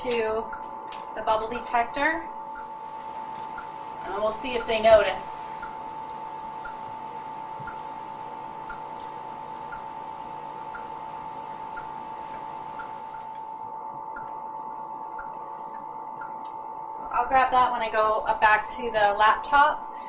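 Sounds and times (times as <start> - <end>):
steady high tone: 0.0 - 14.4, 17.0 - 19.6
background hiss: 2.6 - 13.4.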